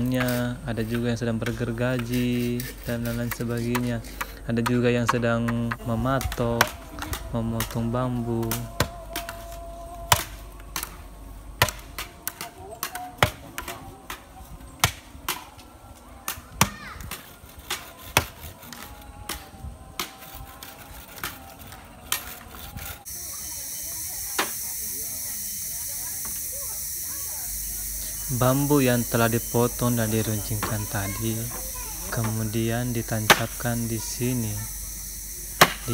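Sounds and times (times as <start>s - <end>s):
blade chopping bamboo: 0.0s - 11.0s, 11.6s - 14.2s, 14.8s - 15.6s, 16.2s - 23.0s, 33.1s - 33.6s, 35.6s - 35.9s
steady hiss: 23.0s - 35.9s.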